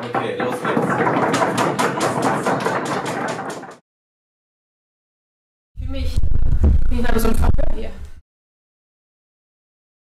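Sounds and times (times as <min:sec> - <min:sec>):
rapid even knocking: 0:00.0 - 0:03.8.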